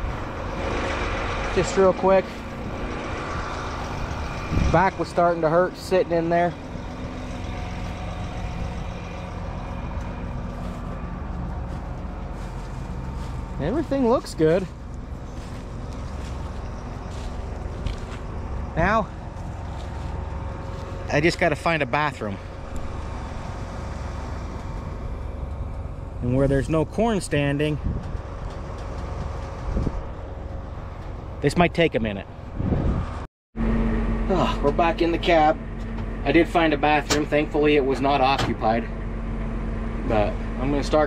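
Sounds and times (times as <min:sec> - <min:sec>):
disc harrow rumbling: 0:00.0 - 0:41.0
tractor diesel engine running: 0:00.0 - 0:41.0.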